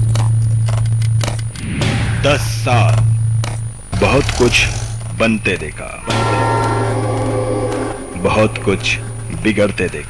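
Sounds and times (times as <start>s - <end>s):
low hum: 0.0s - 10.0s
loud drone of held tones: 1.8s - 10.0s.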